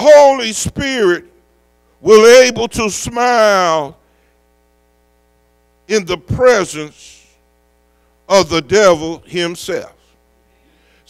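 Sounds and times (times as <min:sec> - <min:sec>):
man's voice: 0:00.0 - 0:01.3, 0:02.0 - 0:04.0, 0:05.9 - 0:07.3, 0:08.3 - 0:10.0
faint electrical mains hum: 0:00.0 - 0:11.0.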